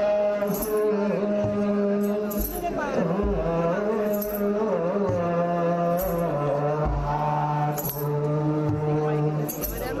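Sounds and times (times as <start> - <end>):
male voices chanting in unison: 0.0 - 10.0.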